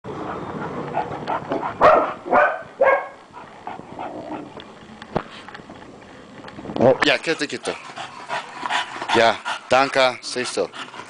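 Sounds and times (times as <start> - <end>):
low rough steady noise: 0.1 - 11.0
dog barking: 1.8 - 3.2.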